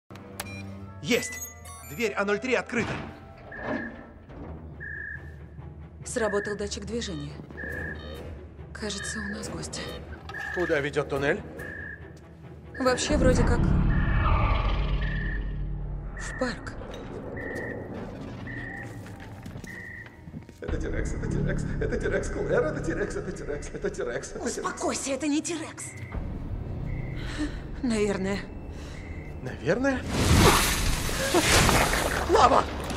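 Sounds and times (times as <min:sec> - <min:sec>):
tense film score with drum: 0:02.8 - 0:29.8
electronic alarm beeping: 0:03.4 - 0:04.2, 0:04.8 - 0:05.4, 0:07.5 - 0:08.0, 0:08.8 - 0:09.6, 0:10.3 - 0:11.0, 0:11.6 - 0:12.1, 0:12.7 - 0:20.3, 0:25.7 - 0:29.6.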